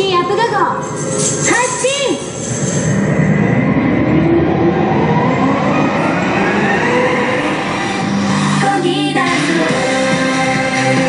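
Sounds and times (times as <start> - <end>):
rising rumbling riser effect: 0.8 - 11.0.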